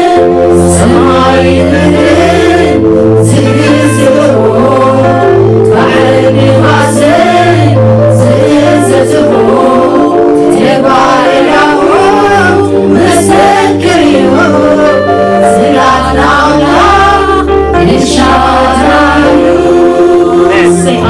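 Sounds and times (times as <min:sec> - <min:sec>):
low held backing notes: 0:00.0 - 0:21.0
women singing worship song: 0:00.0 - 0:21.0.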